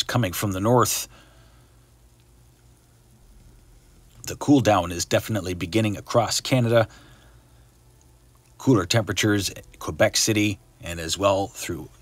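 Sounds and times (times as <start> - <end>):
faint steady hiss: 0.0 - 12.0
low hum: 0.0 - 12.0.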